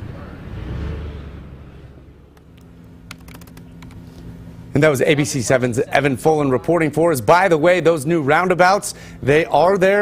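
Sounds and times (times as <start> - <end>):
car pulling away: 0.0 - 2.5.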